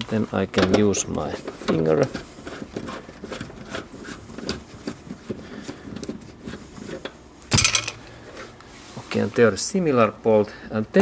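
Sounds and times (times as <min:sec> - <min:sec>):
metal clatter: 0:07.5 - 0:08.0.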